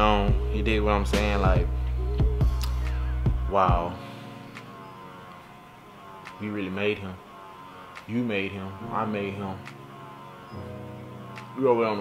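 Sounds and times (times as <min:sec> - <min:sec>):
soft background music chord: 0:00.0 - 0:12.0.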